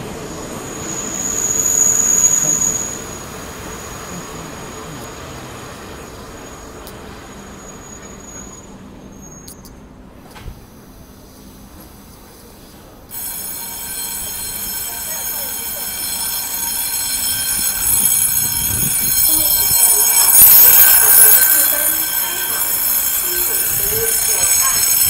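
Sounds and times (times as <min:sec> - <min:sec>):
train high-pitched tones: 0:00.0 - 0:09.7, 0:13.1 - 0:25.0
train carriages rushing past: 0:00.0 - 0:25.0.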